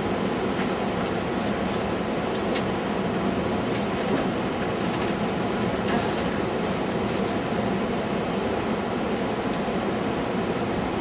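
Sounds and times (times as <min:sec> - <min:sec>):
room noise hiss and rumble: 0:00.0 - 0:11.0.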